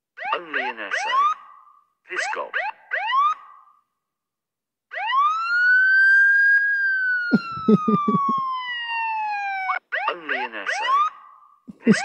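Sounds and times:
police siren wail: 2.2s - 3.7s, 4.9s - 12.0s.

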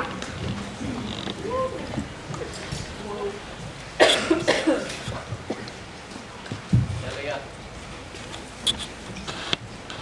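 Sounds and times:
person coughing: 4.0s - 5.0s.

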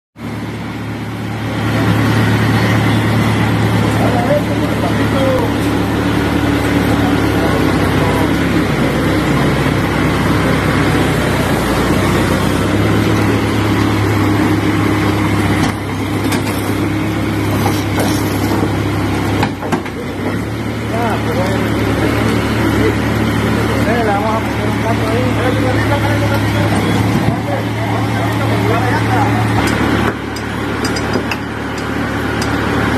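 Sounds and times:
diesel engine running: 0.2s - 32.9s
faint voices: 1.2s - 30.4s.

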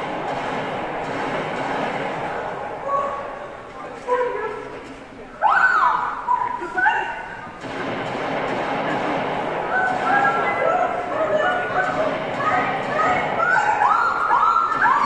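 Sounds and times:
steady noisy background: 0.0s - 15.0s.

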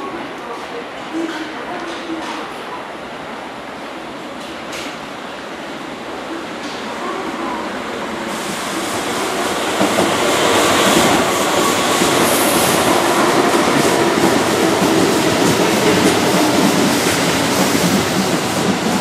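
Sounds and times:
electric train running: 8.3s - 19.0s.

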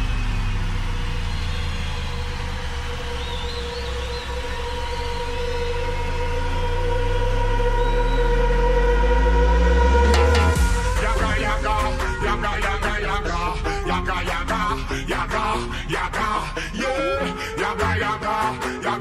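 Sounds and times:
deep sub-bass: 0.0s - 19.0s
sustained synth tones: 0.0s - 19.0s.

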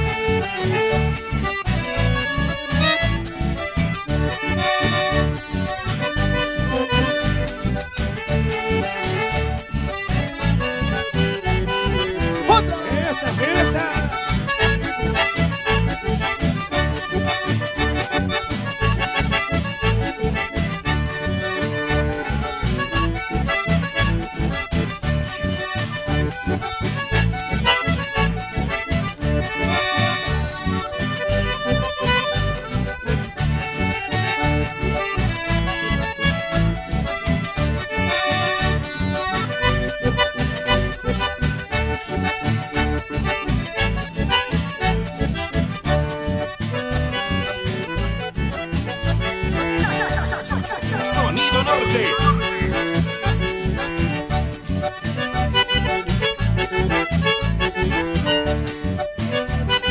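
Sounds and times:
accordion: 0.0s - 59.9s
live band playing: 0.0s - 59.9s
steady bass beat: 48.9s - 54.6s.

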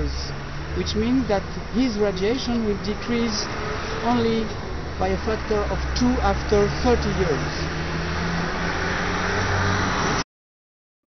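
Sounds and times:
vehicle engine hum: 0.0s - 10.2s
road noise: 0.0s - 10.3s.

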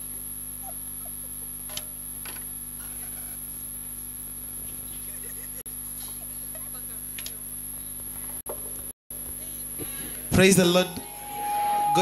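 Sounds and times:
electrical hum: 0.0s - 12.0s
high whine: 10.4s - 12.0s.

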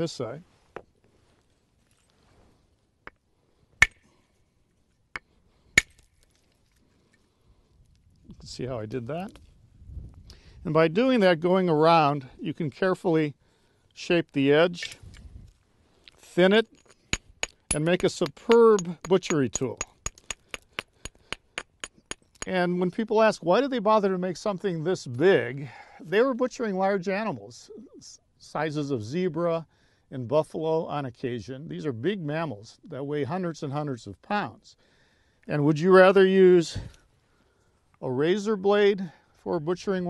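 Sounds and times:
antler tapping stone: 3.8s - 4.0s, 16.7s - 22.6s.

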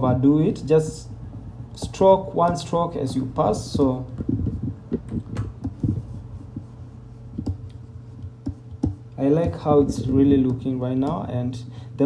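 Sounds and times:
steady low hum: 0.0s - 12.0s
computer mouse clicks and taps: 7.4s - 9.6s.

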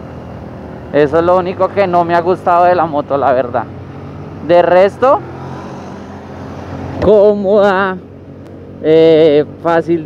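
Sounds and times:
scooter engine cruising: 0.0s - 10.0s
wind and road noise: 0.0s - 10.0s.

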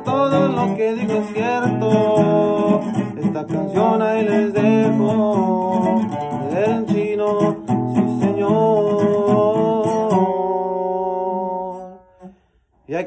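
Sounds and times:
man singing: 0.0s - 12.2s
acoustic guitar strumming: 0.0s - 12.6s.

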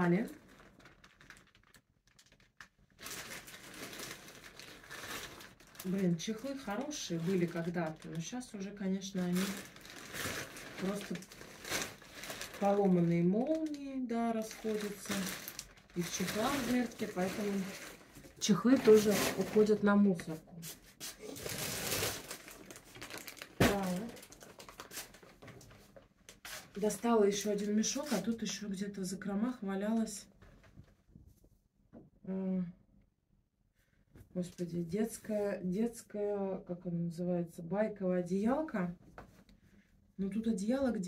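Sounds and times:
plastic crinkling and rustling: 0.0s - 28.6s.

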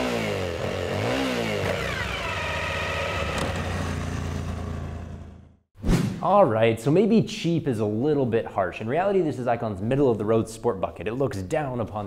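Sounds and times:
motorcycle engine revving: 0.0s - 5.7s.

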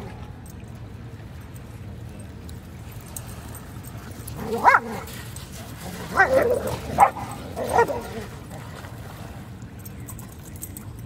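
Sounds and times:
dog barking: 6.2s - 8.1s.

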